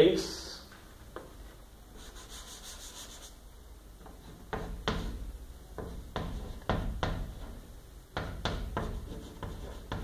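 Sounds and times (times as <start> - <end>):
hand rubbing chalkboard: 1.4 - 3.4, 4.0 - 10.0.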